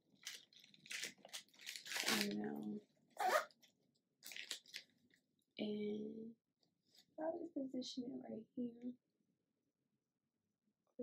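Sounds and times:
candy packaging crinkling: 0:00.0 - 0:02.8, 0:03.5 - 0:05.3.

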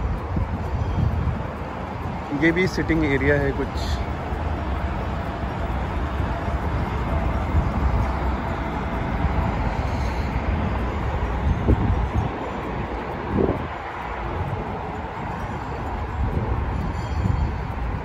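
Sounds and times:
road traffic rumble: 0:00.0 - 0:18.0
wind buffeting microphone: 0:00.0 - 0:18.0.

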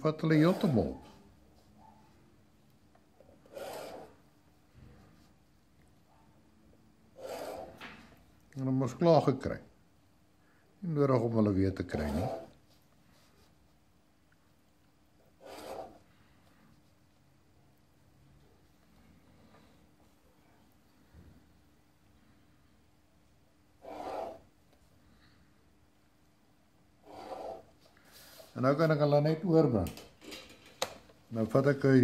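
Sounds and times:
faint steady hum: 0:00.0 - 0:32.0
plastic ruler scraping paper: 0:03.4 - 0:04.2, 0:07.2 - 0:07.9, 0:11.9 - 0:12.6, 0:15.4 - 0:16.1, 0:23.8 - 0:24.5, 0:27.0 - 0:27.8.

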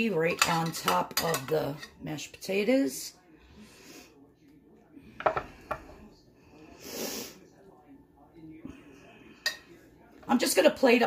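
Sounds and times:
person breathing: 0:05.0 - 0:07.4.

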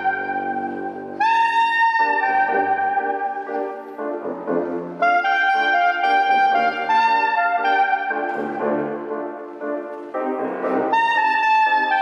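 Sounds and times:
soprano saxophone melody: 0:00.0 - 0:12.0.

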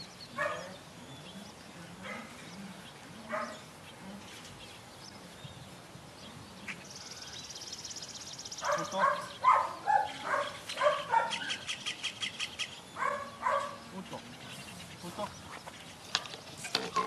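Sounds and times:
puppy barking: 0:00.4 - 0:00.7, 0:03.3 - 0:03.6, 0:08.6 - 0:11.6, 0:13.0 - 0:13.8
bird trilling and chattering: 0:06.6 - 0:17.0.

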